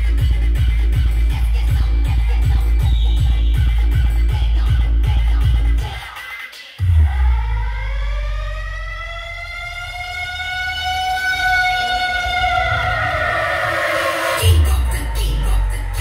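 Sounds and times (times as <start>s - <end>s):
deep bass: 0.0s - 5.9s, 6.8s - 16.0s
wailing siren sound effect: 6.8s - 16.0s.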